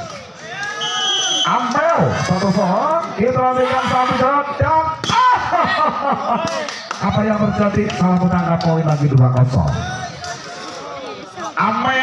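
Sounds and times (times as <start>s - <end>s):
crowd: 0.0s - 12.0s
excited voices calling: 0.4s - 7.8s.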